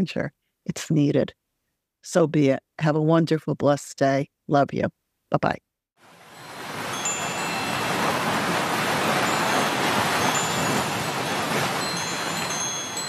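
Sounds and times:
ocean surf rushing: 0:06.0 - 0:13.0
wind chimes tinkling: 0:06.2 - 0:13.0.

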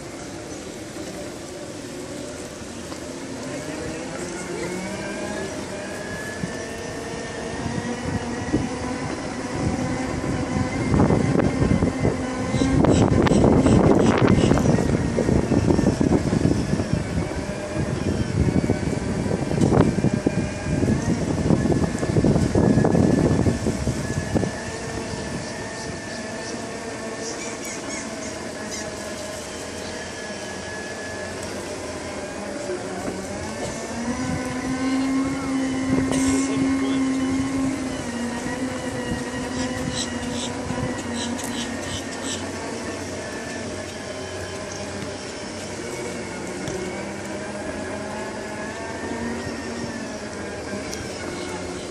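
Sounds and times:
electric drives whining: 0:00.0 - 0:51.9
wheels rolling over brick paving: 0:00.0 - 0:51.9.

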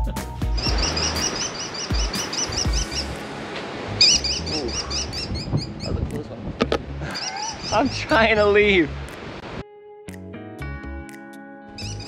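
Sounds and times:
background music: 0:00.0 - 0:12.0
kestrel shrill calls: 0:00.6 - 0:03.2, 0:04.0 - 0:05.9, 0:07.2 - 0:08.0, 0:11.8 - 0:12.0.

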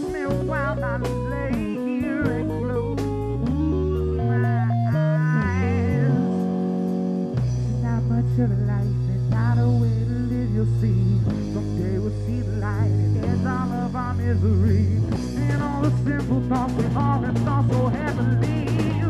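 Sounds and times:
bending electric guitar notes: 0:00.0 - 0:19.0
held bass notes: 0:00.0 - 0:19.0.

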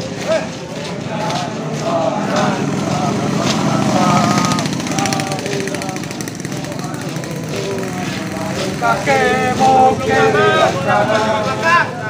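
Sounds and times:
boots tramping on road: 0:00.0 - 0:12.0
soldiers chanting marching song: 0:00.0 - 0:12.0.

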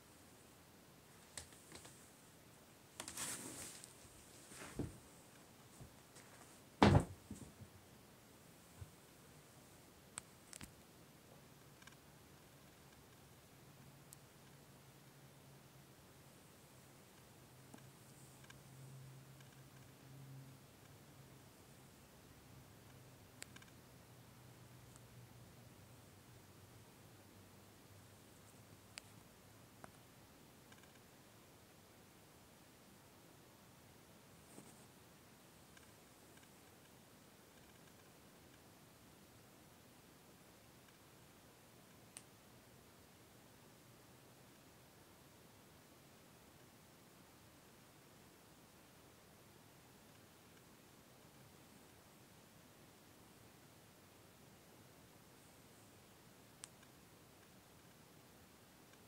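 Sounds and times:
brief rustle: 0:03.0 - 0:05.0
sharp loud thump: 0:06.8 - 0:07.4
soft knock: 0:06.8 - 0:07.5.

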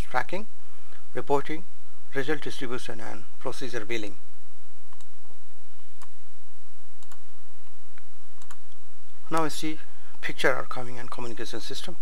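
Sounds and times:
low steady hum: 0:00.0 - 0:12.0
computer mouse clicking: 0:07.0 - 0:07.2, 0:08.4 - 0:08.7.

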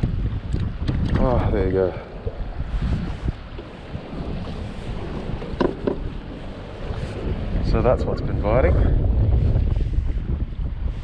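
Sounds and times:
choppy water slapping kayak: 0:00.0 - 0:11.0
wind buffeting microphone: 0:00.0 - 0:11.0.

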